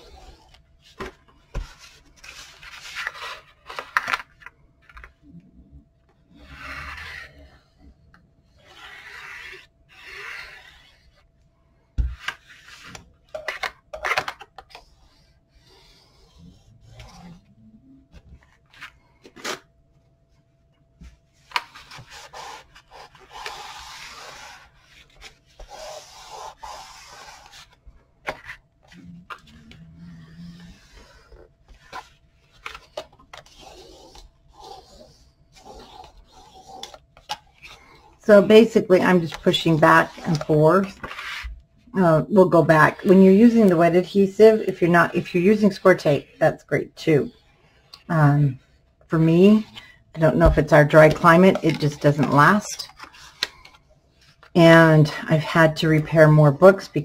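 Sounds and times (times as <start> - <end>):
craft tool scraping cardstock: 8.6 - 11.2.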